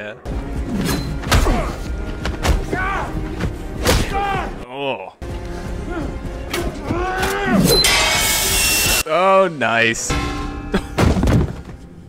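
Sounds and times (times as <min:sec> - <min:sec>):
film music: 0:00.0 - 0:12.0.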